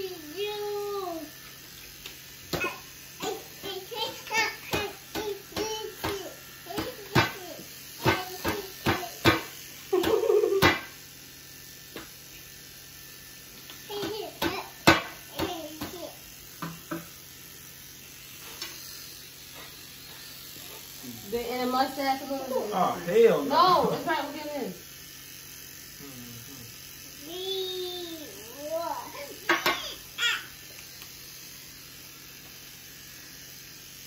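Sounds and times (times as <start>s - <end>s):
electric shaver humming: 0.0s - 34.0s.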